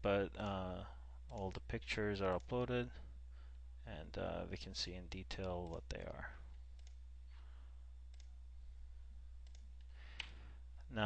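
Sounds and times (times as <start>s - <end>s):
low electrical hum: 0.0s - 11.0s
faint computer mouse clicks: 9.4s - 10.4s.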